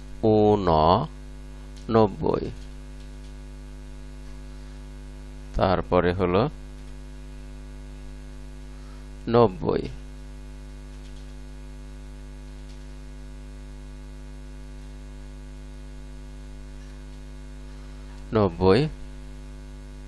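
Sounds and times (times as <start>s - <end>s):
electrical mains hum: 0.0s - 20.0s
man speaking: 0.2s - 1.2s, 1.9s - 2.6s, 5.6s - 6.6s, 9.2s - 10.0s, 18.3s - 19.0s.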